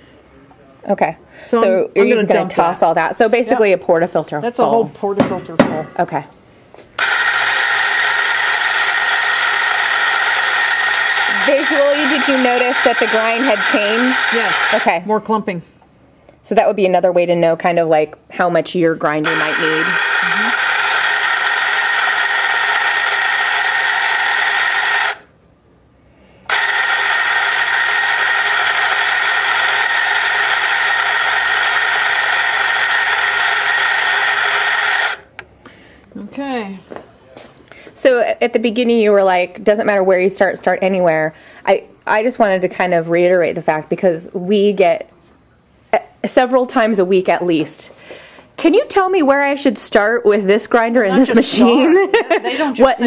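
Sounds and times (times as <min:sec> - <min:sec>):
electric coffee grinder grinding: 0:07.0 - 0:15.0, 0:19.2 - 0:25.3, 0:26.5 - 0:35.4.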